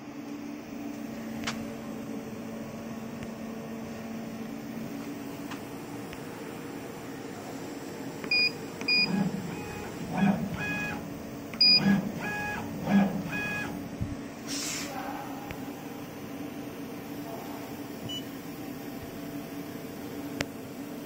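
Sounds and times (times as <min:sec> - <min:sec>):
machine hum: 0:00.0 - 0:21.0
keypad beeps: 0:08.3 - 0:09.9, 0:11.6 - 0:12.6, 0:13.3 - 0:13.7, 0:18.1 - 0:18.3
stepper motors whining: 0:08.3 - 0:14.0
air hiss: 0:14.4 - 0:14.9.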